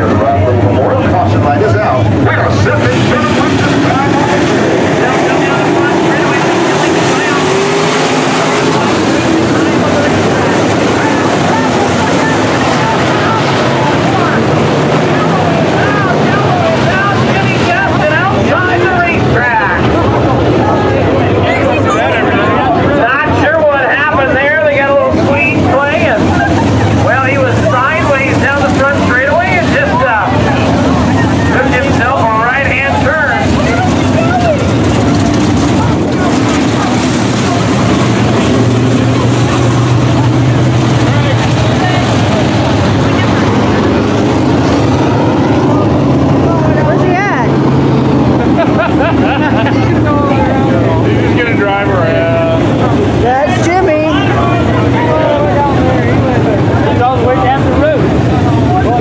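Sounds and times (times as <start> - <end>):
people talking: 0.0 - 59.0
race car engines: 0.0 - 59.0.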